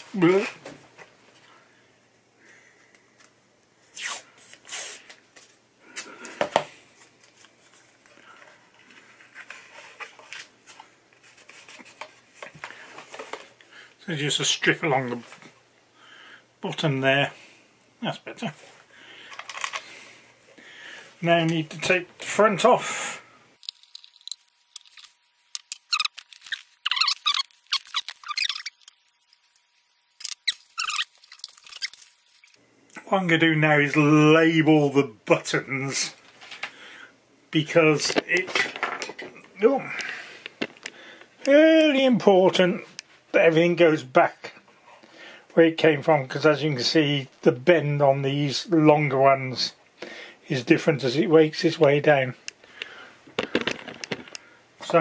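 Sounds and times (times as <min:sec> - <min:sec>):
tape rubbing and handling: 0:03.8 - 0:06.1, 0:23.6 - 0:32.6
screwdriver squeaking screws: 0:25.6 - 0:29.0, 0:30.2 - 0:32.0.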